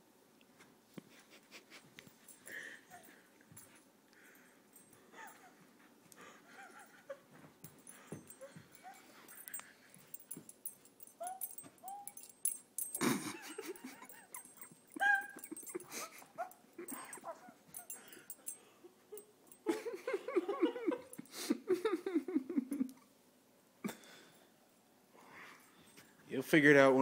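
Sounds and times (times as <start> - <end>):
dog whimpering: 5.1 - 5.6, 6.5 - 7.2, 8.3 - 9.6, 11.1 - 12.3, 13.4 - 18.3.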